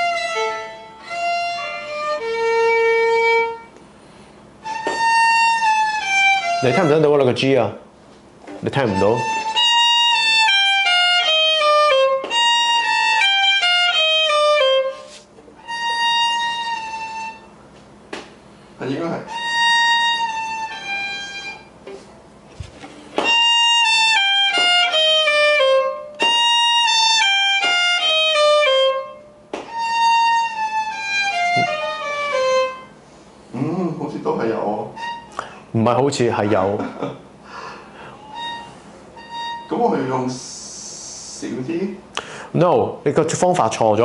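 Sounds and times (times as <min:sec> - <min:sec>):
violin descending phrase: 0:00.0 - 0:03.7, 0:04.6 - 0:07.7, 0:08.6 - 0:17.5, 0:18.8 - 0:21.7, 0:23.2 - 0:32.9, 0:33.6 - 0:35.3, 0:38.0 - 0:41.8.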